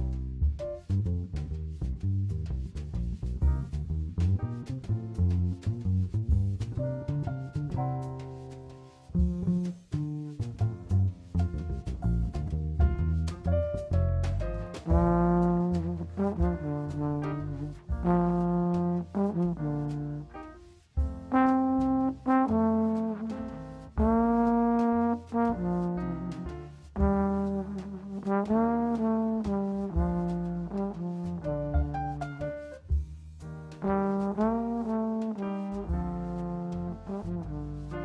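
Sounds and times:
jazz trombone melody: 0.0 - 38.0
walking bass line: 0.0 - 38.0.

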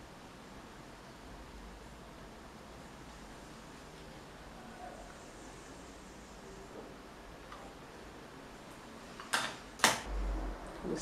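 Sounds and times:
low rumble: 10.1 - 11.0.

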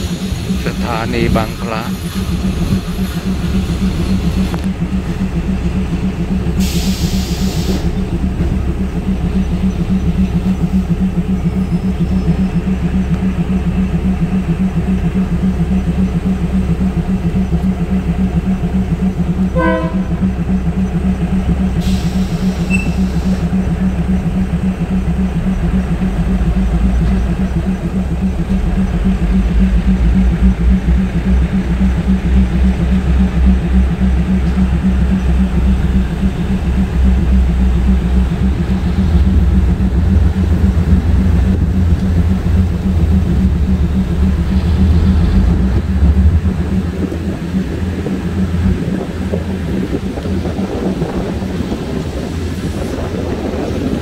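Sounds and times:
diesel train engine idling: 0.0 - 54.0.

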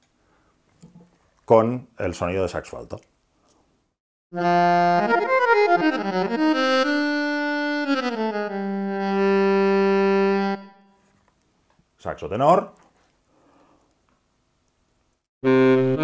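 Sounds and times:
saxophone phrase: 15.5 - 16.0.

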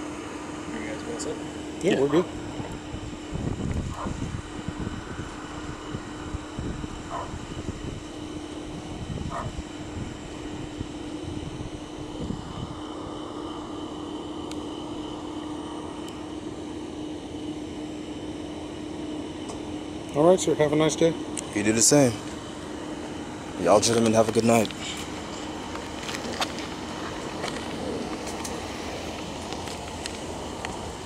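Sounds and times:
steady mechanical hum: 0.0 - 31.0.

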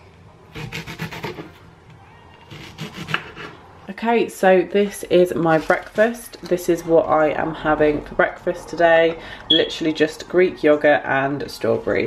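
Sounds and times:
knife cutting on wooden board: 2.5 - 3.6.

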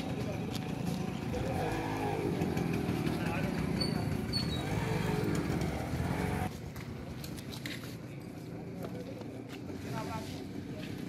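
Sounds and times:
vehicle engine running: 0.0 - 7.6.

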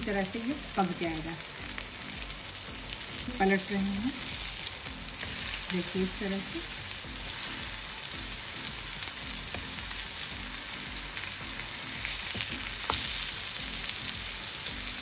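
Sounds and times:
patties sizzling in oil: 0.0 - 15.0
spatula turning patties: 3.3 - 15.0.

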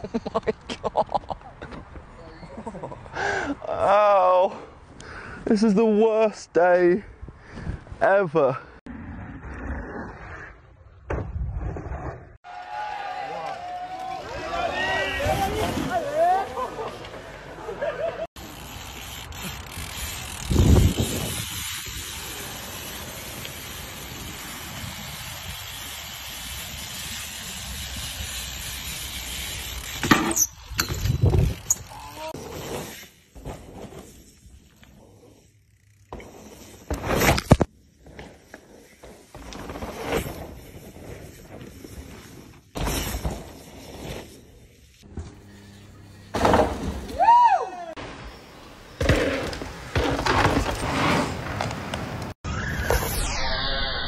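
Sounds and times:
wind and tyre noise: 6.4 - 12.4, 18.4 - 45.1
bikes thudding on ground: 11.0 - 12.3, 17.9 - 45.4, 46.3 - 47.3, 48.9 - 52.4.

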